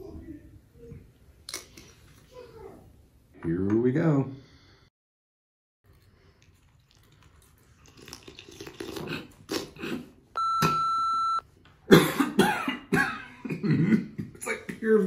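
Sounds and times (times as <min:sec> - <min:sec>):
steady bleep tone: 0:10.4 - 0:11.4
man coughing and sputtering: 0:11.9 - 0:14.7.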